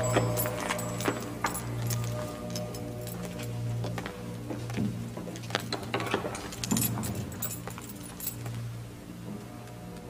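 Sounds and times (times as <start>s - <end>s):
light metallic jingling: 0.0s - 3.7s, 6.4s - 8.7s
steady low drone: 0.0s - 10.0s.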